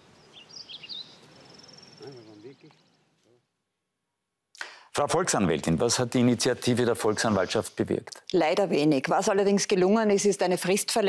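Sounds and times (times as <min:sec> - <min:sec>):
man speaking: 0:02.0 - 0:03.5, 0:04.9 - 0:08.2.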